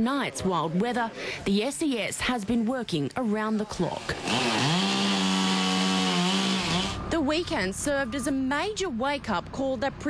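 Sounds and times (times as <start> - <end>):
chainsaw revving: 4.0 - 7.0.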